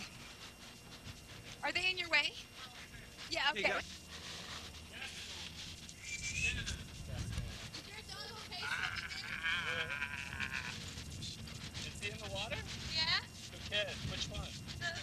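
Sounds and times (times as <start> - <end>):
animal bleating: 4.9 - 5.5, 8.5 - 10.9.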